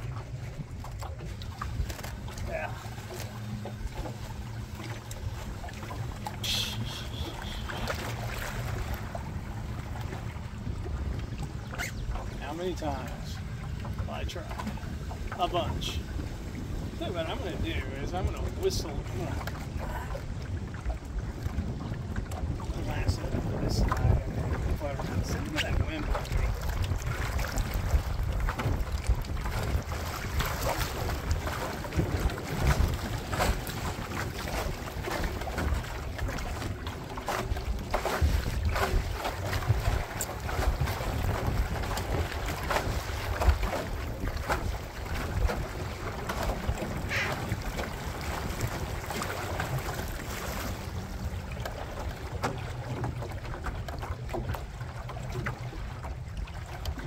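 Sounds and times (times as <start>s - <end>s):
waves slapping boat hull: 0.0s - 57.0s
wind buffeting microphone: 0.0s - 57.0s.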